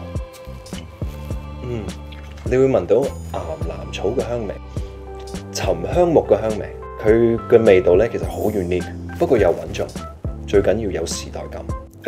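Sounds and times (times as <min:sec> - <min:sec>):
background music with held notes: 0:00.0 - 0:12.0
man speaking: 0:05.5 - 0:11.7.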